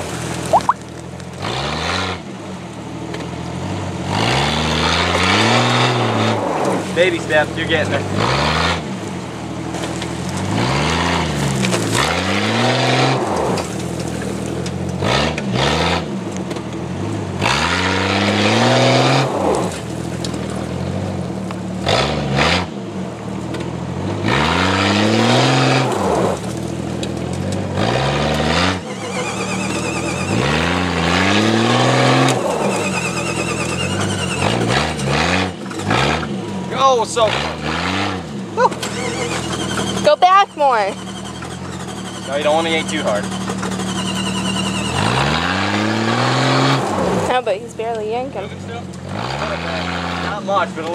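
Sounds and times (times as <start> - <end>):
engine revving: 0.0 - 2.4, 3.5 - 9.1, 9.7 - 22.9, 23.5 - 50.9.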